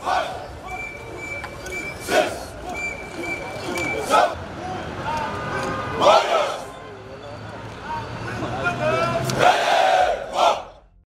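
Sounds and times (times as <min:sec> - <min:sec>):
soldiers shouting together: 0:00.0 - 0:00.8, 0:02.0 - 0:05.3, 0:06.0 - 0:06.7, 0:09.2 - 0:10.8
crowd noise: 0:00.0 - 0:11.0.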